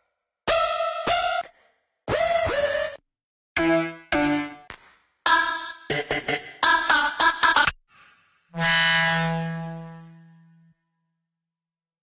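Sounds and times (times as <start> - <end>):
low buzzy synthesizer note: 8.6 - 10.8.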